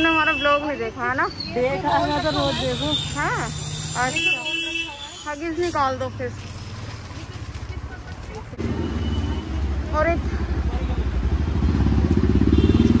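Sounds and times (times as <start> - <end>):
motorcycle engine running: 10.2 - 13.0.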